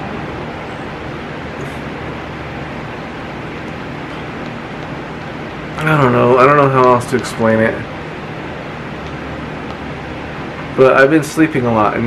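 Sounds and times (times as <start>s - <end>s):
low hum: 0.0s - 11.4s.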